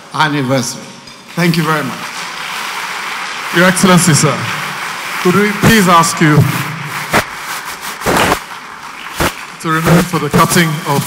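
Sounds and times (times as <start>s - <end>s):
audience applauding: 1.4s - 11.0s
short noisy burst: 6.4s - 8.5s
sharp crack: 6.6s - 8.5s.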